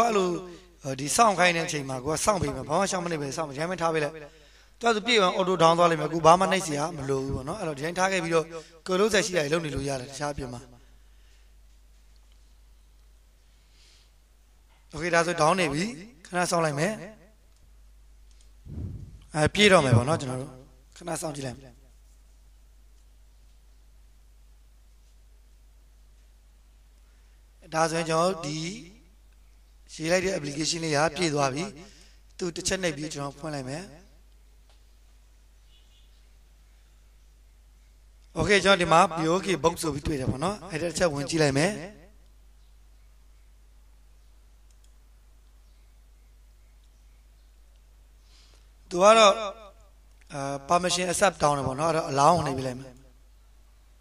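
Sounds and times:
steady low hum: 0:17.3 - 0:21.1
low muffled sound: 0:18.5 - 0:20.6
man's voice: 0:19.2 - 0:21.6
computer mouse clicks: 0:44.7 - 0:45.0.

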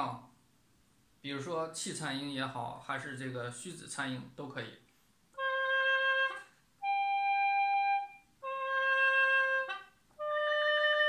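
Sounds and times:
gourd flute long notes: 0:05.4 - 0:11.0.

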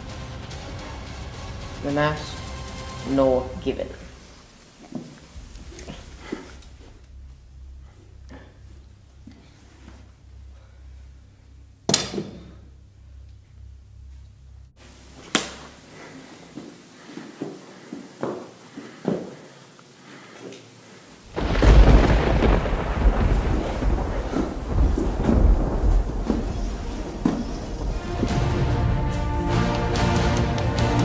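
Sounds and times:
deep sustained rumble: 0:05.3 - 0:14.8, 0:21.3 - 0:29.5.

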